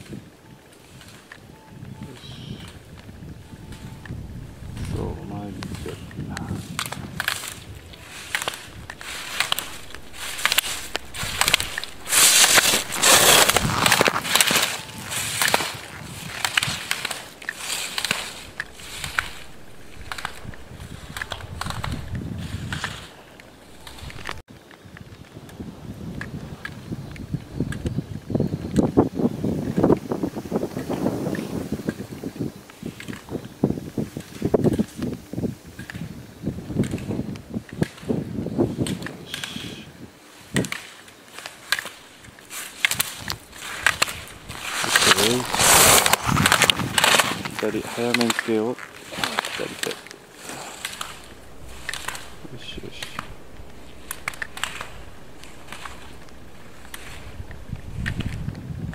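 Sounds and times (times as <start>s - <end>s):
skis scraping on snow: 2.6s - 24.4s, 36.8s - 58.9s.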